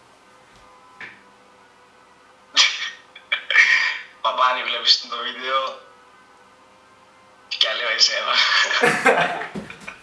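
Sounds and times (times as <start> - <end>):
man laughing: 2.6 - 4.1, 8.3 - 10.0.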